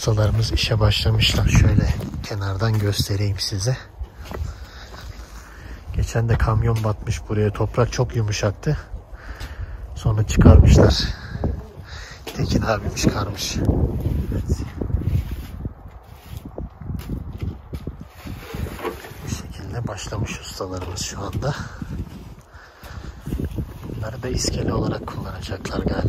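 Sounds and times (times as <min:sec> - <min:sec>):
wind rumbling on microphone: 0:00.0 - 0:26.0
footsteps on ground: 0:00.2 - 0:07.6, 0:20.1 - 0:24.6.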